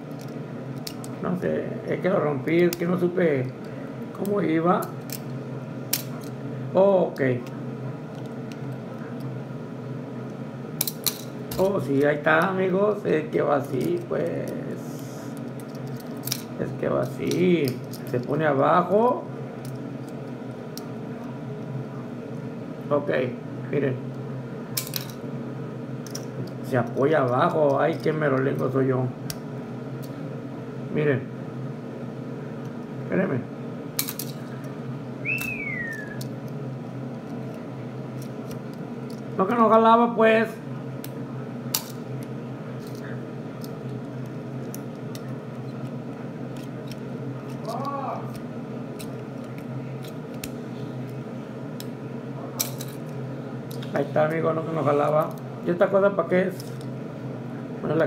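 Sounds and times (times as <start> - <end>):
steady low hum: 0.0 - 58.0.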